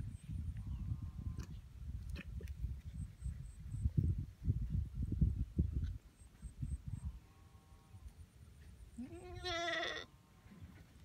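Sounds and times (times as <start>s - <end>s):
goat bleating: 9.0s - 10.1s.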